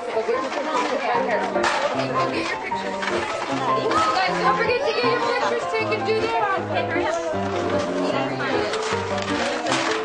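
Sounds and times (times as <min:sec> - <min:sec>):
young children chattering: 0:00.0 - 0:10.0.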